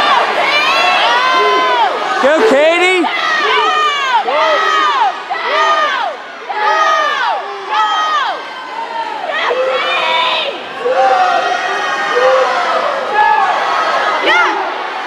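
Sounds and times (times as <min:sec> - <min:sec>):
crowd yelling and cheering: 0:00.0 - 0:15.0.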